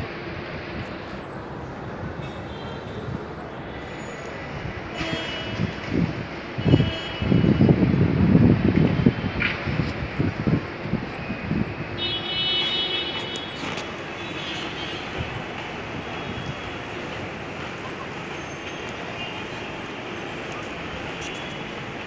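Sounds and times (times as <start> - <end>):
road traffic: 0.0 - 22.0
vehicle horn toot: 6.6 - 7.6, 12.0 - 13.6.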